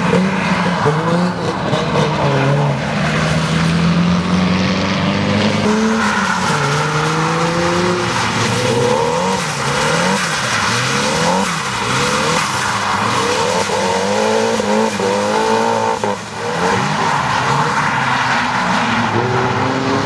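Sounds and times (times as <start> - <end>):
car engine revving hard: 0.0 - 17.7
tyre noise on wet track: 5.3 - 20.0.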